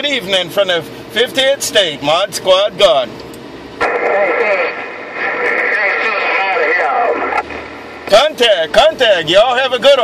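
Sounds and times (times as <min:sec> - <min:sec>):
garbled voice over radio: 0:03.8 - 0:07.5
radio hiss: 0:03.8 - 0:08.4.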